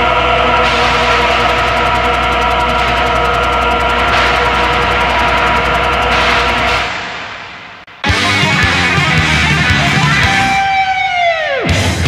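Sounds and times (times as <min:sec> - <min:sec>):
droning synthesizer music: 0:00.0 - 0:10.7.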